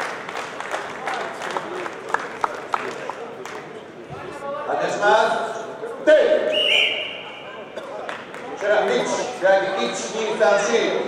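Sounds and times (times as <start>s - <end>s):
sports hall noise: 0.0s - 11.0s.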